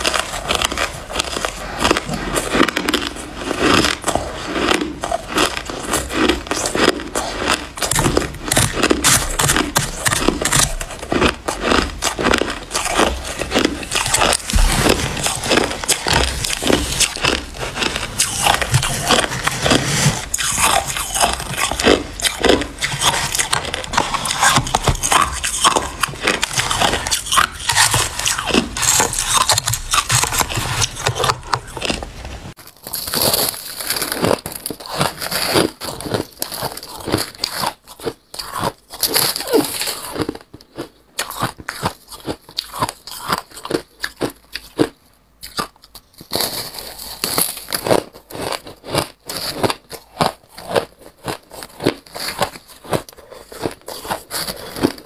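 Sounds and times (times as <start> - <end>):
crunching shaved ice: 0.0 - 55.0.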